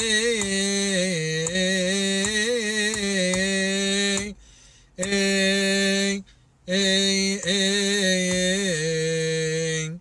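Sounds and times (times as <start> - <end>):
man chanting unaccompanied: 0.0 - 4.4, 5.0 - 10.0
short breath: 4.4 - 5.0, 6.2 - 6.6.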